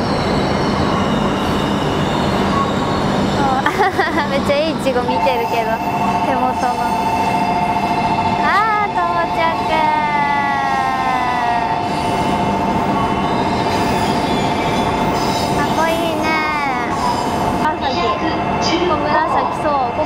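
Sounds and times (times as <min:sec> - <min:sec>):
warbling two-tone electronic signal: 0:04.9 - 0:17.2.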